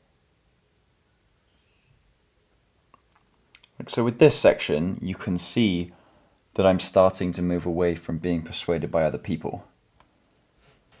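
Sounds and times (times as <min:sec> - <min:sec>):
man speaking: 0:03.7 - 0:09.8.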